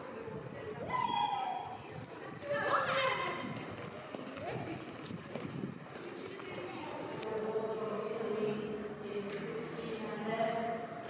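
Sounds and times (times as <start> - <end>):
indistinct group chatter: 0.0 - 11.0.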